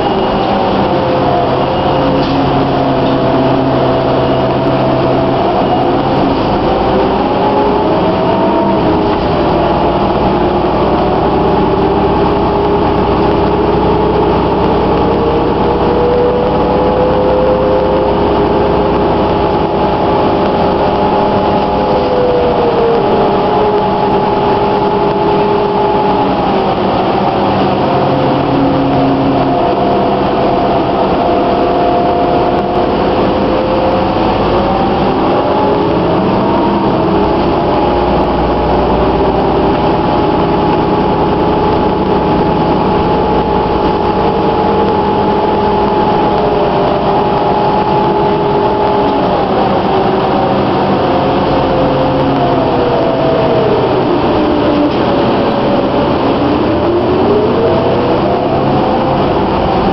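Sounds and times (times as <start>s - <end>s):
bus diesel engine running: 0.0s - 59.9s
hybrid drive whine: 0.0s - 59.9s.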